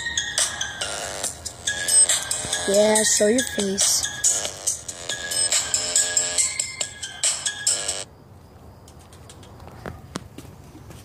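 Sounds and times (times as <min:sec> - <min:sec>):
electronic ringtone tune: 0:00.0 - 0:08.1.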